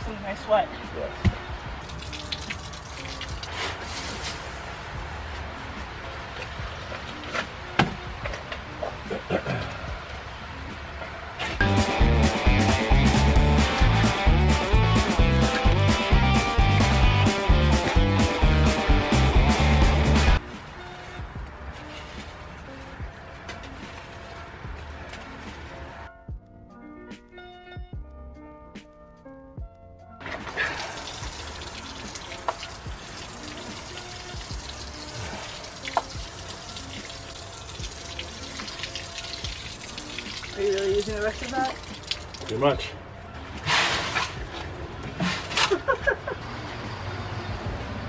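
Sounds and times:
water pouring from watering can: 0:01.8 - 0:04.8, 0:30.2 - 0:42.8
background music with beat: 0:11.6 - 0:30.2, 0:31.2 - 0:42.3
water splashing into hole: 0:30.2 - 0:42.6.

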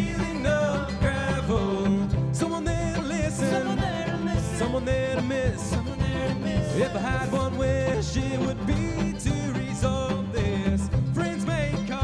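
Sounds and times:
acoustic guitar strumming: 0:00.0 - 0:12.0
mandolin: 0:00.0 - 0:12.0
sliding melody line: 0:00.0 - 0:12.0.

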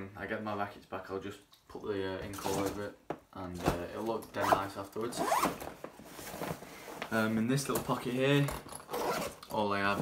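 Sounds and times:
bag zipper being pulled: 0:05.2 - 0:05.5, 0:08.8 - 0:09.4.

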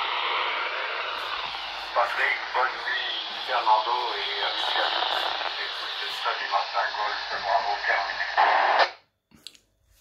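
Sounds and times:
radio speaker hiss: 0:00.0 - 0:09.0.

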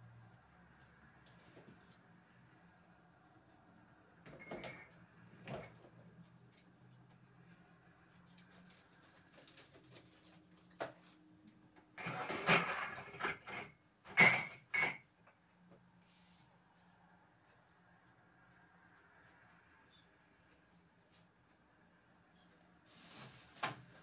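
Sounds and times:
bottles and containers clattering: 0:04.3 - 0:05.8, 0:12.0 - 0:15.0.

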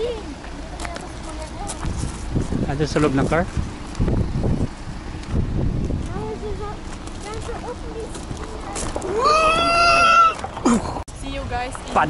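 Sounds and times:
person crying out high-pitched: 0:09.1 - 0:10.4.

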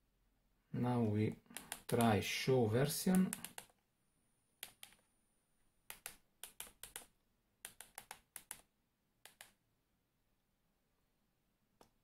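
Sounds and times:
keyboard key clicks: 0:05.9 - 0:08.7.

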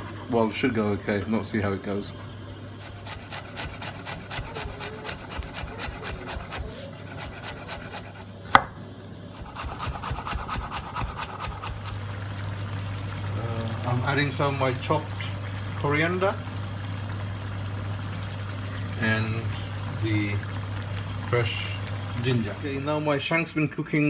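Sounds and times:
knife chopping on wooden board: 0:03.0 - 0:08.8, 0:09.4 - 0:11.8.

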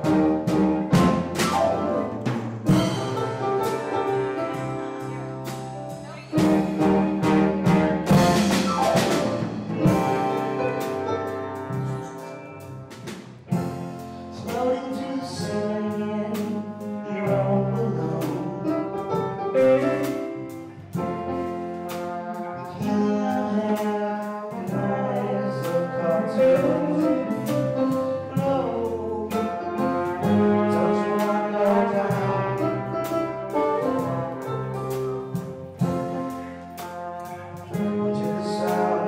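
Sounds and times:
jazz band ensemble hits: 0:00.0 - 0:39.0.

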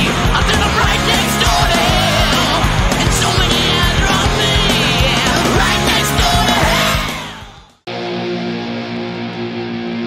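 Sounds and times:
distorted guitar chord: 0:00.0 - 0:10.0
loud rock music: 0:00.0 - 0:10.0.

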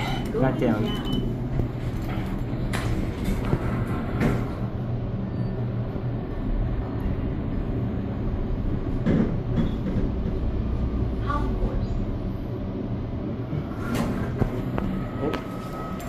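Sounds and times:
elevator hum and rumble: 0:00.0 - 0:16.0.

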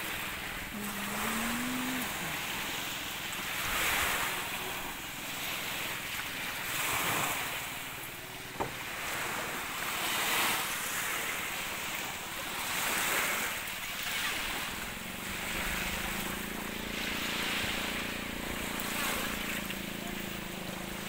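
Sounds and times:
small waves washing ashore: 0:00.0 - 0:21.0.

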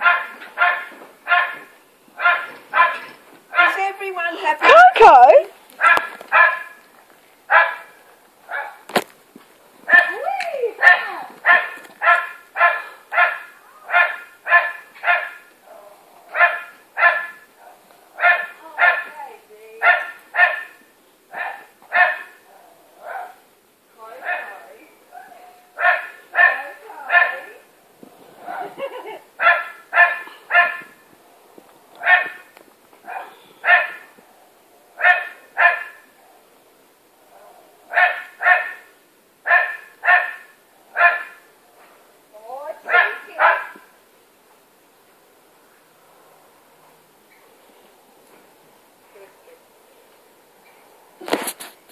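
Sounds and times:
dog barking: 0:00.0 - 0:03.8, 0:05.8 - 0:06.8, 0:07.5 - 0:08.8, 0:09.9 - 0:10.2, 0:10.8 - 0:15.4, 0:16.3 - 0:19.1, 0:19.8 - 0:22.4, 0:23.0 - 0:23.4, 0:24.2 - 0:24.6, 0:25.2 - 0:27.5, 0:28.5 - 0:30.9, 0:32.0 - 0:34.1, 0:35.0 - 0:36.1, 0:37.9 - 0:38.9, 0:39.5 - 0:41.5, 0:42.9 - 0:43.8.

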